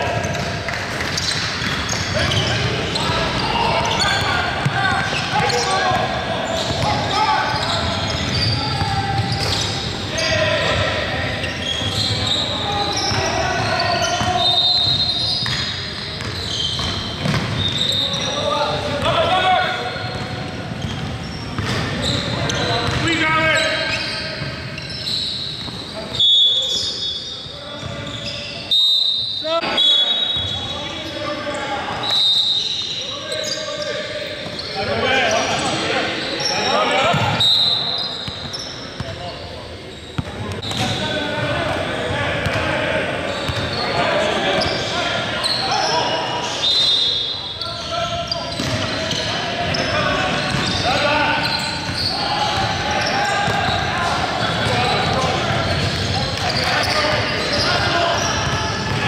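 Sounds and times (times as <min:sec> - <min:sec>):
sneaker squeaks: 0:00.0 - 0:59.0.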